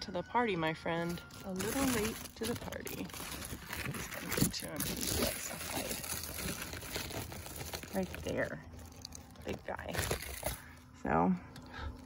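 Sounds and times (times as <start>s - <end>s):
leaves rustling against phone: 0.9s - 10.9s.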